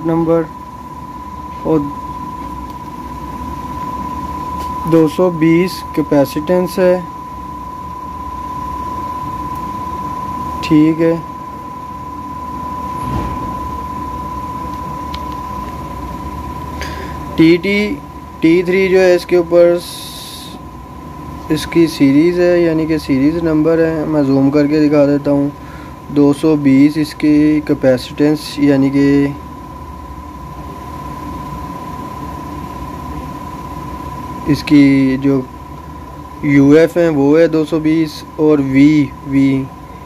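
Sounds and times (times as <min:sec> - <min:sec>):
background hum and hiss: 0:00.0 - 0:40.0
high-pitched whine: 0:00.0 - 0:40.0.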